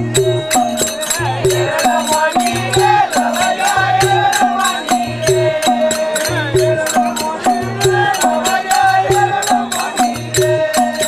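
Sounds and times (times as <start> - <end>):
sharp percussion strikes: 0.0 - 11.0
steady drum beat: 0.0 - 11.0
voices chanting wavering melody: 0.0 - 11.0.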